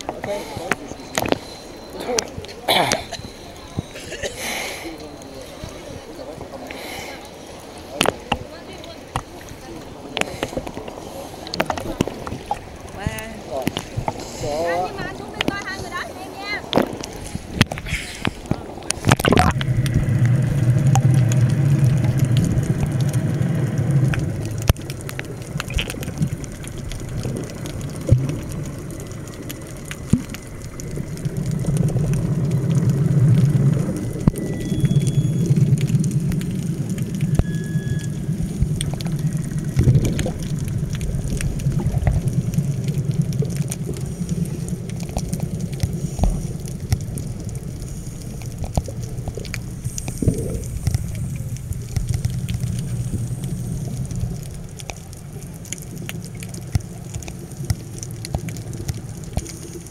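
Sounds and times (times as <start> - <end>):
divers breathing through regulators: 6.7 - 7.4, 17.2 - 18.5
rumbling bubble surges: 16.7 - 59.9
small clicks: 16.7 - 59.9.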